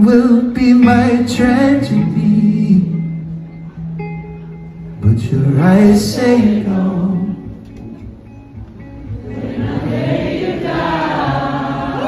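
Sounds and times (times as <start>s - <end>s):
low musical accompaniment: 0.0s - 12.0s.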